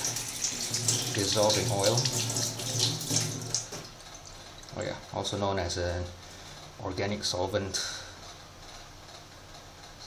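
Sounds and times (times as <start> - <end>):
water running into a sink: 0.0 - 4.7.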